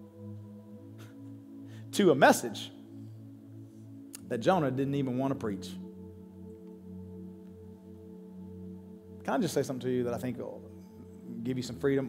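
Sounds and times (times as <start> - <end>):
ambient keyboard pad chord: 0.0 - 12.0.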